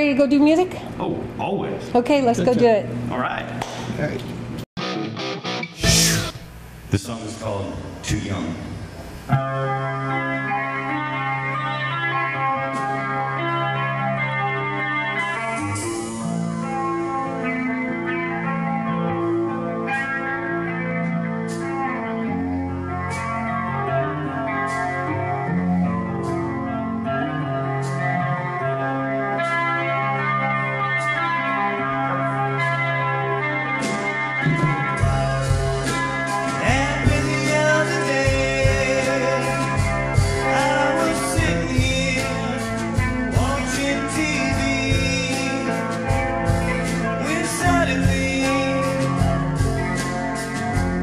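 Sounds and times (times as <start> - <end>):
bass guitar: 4.2 - 6.6, 8.7 - 51.0
electric guitars sustained chords: 4.4 - 51.0
heavy drums: 4.8 - 7.2, 33.8 - 51.0.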